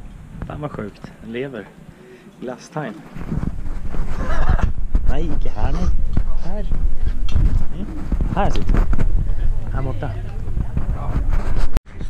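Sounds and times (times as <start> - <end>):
wind noise: 0.0 - 1.9, 3.1 - 12.0.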